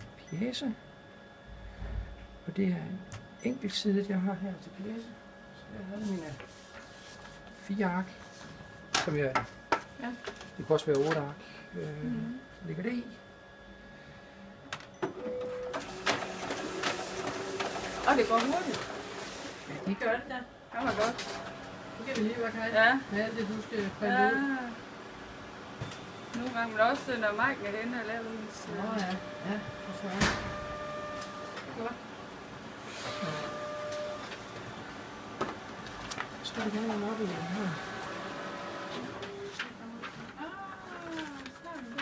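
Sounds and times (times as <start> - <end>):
copier motor whine: 0.0 - 42.0
document feeder running: 15.0 - 20.1, 20.8 - 23.9, 26.3 - 42.0.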